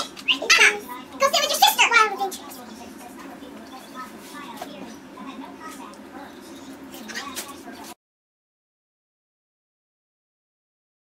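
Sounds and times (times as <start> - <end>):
girl's high-pitched voice: 0.2 - 6.4, 7.0 - 8.0.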